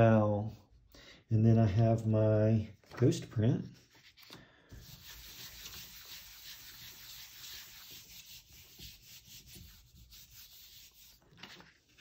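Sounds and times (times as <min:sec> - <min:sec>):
palms rubbing on paper: 0:03.8 - 0:12.0.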